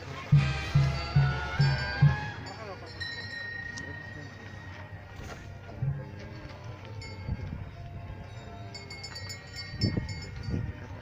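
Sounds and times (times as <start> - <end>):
small bells ringing: 0.8 - 5.2, 6.6 - 11.0.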